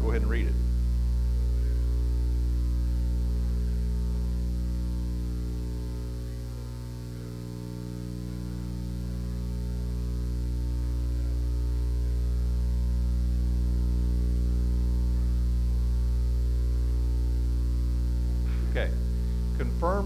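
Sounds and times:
electrical mains hum: 0:00.0 - 0:20.0.

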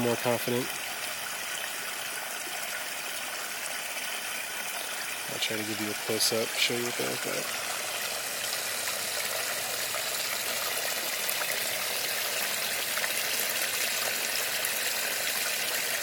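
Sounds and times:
water trickling into fish tank: 0:00.0 - 0:16.0.

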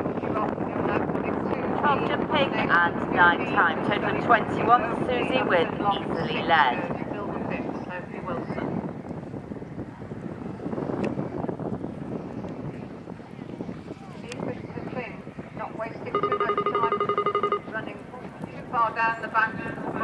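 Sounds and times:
wind on microphone: 0:00.0 - 0:20.0
electronic tone: 0:16.1 - 0:17.8.

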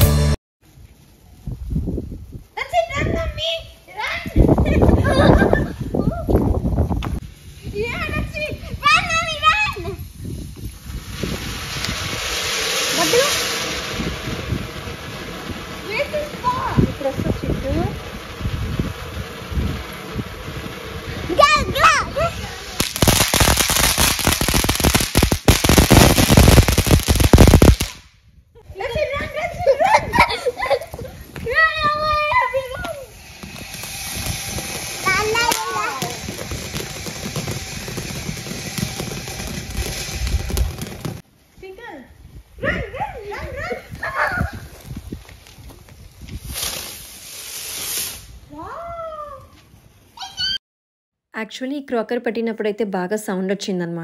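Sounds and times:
firecrackers crackling: 0:03.4 - 0:28.2, 0:28.9 - 0:42.4, 0:43.2 - 0:48.6.

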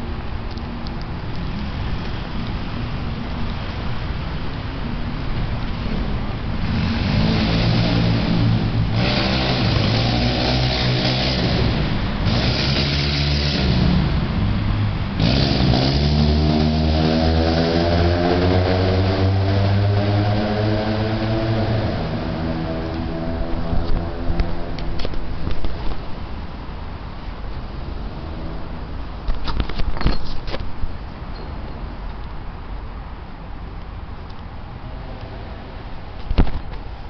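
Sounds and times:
car engine revving: 0:06.5 - 0:25.0.

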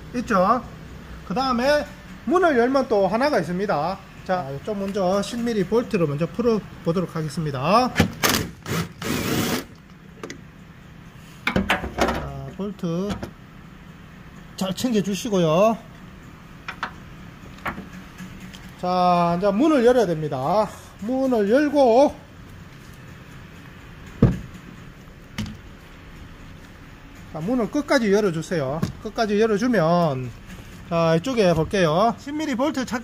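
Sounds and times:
power drill undoing a bolt: 0:08.0 - 0:09.8
truck door thump: 0:24.2 - 0:24.5, 0:28.8 - 0:29.0.

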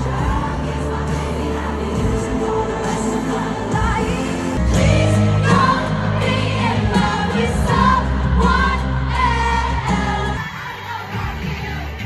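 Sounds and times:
live pop music with singer: 0:00.0 - 0:12.0.

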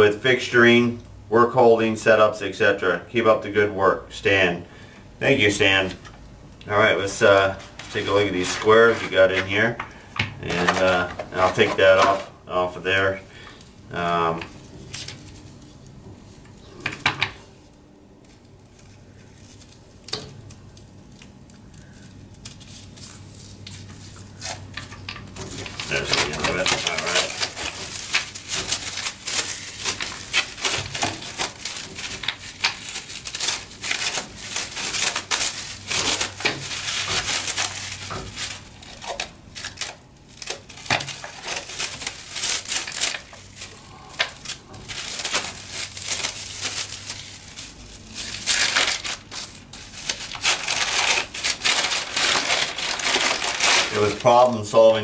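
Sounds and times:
plastic and paper crinkling: 0:06.7 - 0:13.4, 0:17.6 - 0:55.0.

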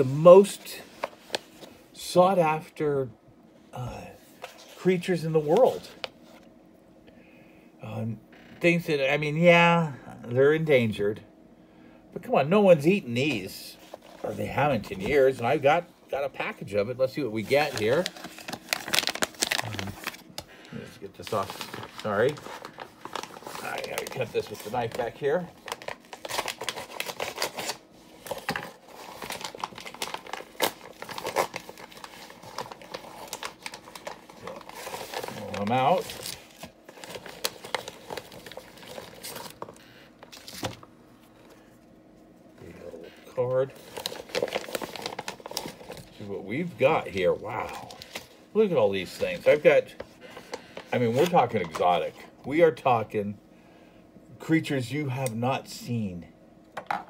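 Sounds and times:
packaging crinkling and rustling: 0:00.4 - 0:01.8, 0:17.0 - 0:41.9, 0:42.7 - 0:52.2.

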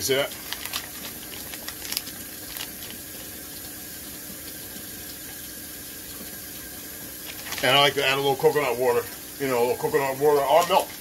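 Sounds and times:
plastic pouch crinkling: 0:00.1 - 0:03.4, 0:07.2 - 0:07.9.

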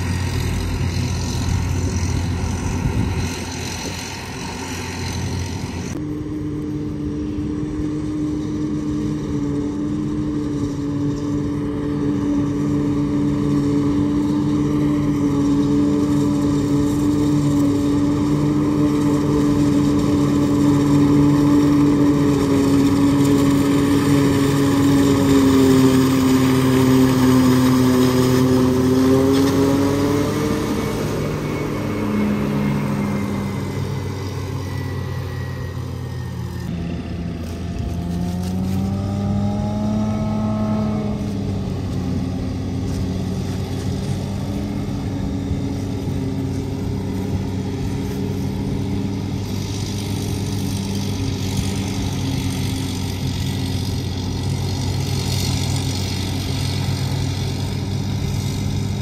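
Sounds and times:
forage harvester chopping corn: 0:00.0 - 0:59.0
tractor engine revving: 0:00.0 - 0:59.0.

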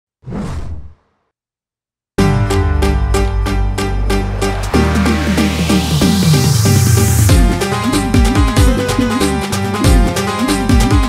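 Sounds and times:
whoosh sound effect: 0:00.2 - 0:01.1.

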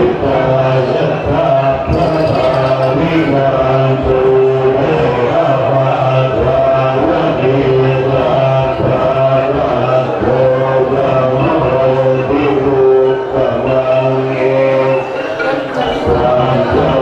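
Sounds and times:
low voices chanting: 0:00.0 - 0:17.0.

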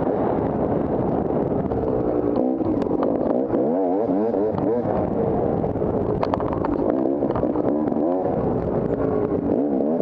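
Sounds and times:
dirt bike engine revving: 0:02.0 - 0:10.0.

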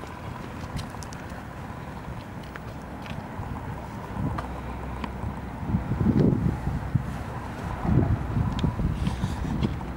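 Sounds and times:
wind buffeting microphone: 0:00.0 - 0:09.9.

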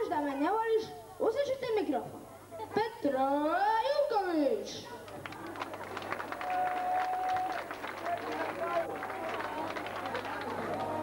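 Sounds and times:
crowd chatter: 0:04.6 - 0:11.0
audience applause: 0:05.1 - 0:11.0.

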